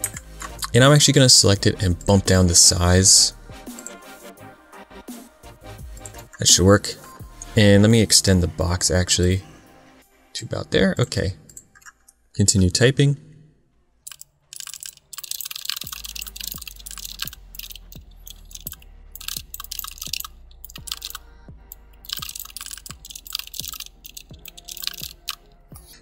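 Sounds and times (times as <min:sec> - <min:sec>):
background music with steady beat: 0:00.0 - 0:26.0
rapid keyboard typing: 0:14.1 - 0:25.5.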